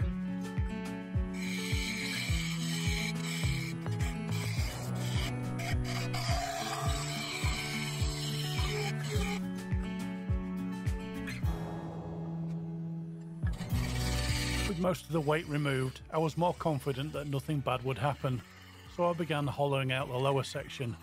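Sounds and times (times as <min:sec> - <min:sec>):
music with steady beat: 0:00.0 - 0:12.6
gouge scraping spinning wood: 0:01.3 - 0:09.5, 0:13.5 - 0:21.0.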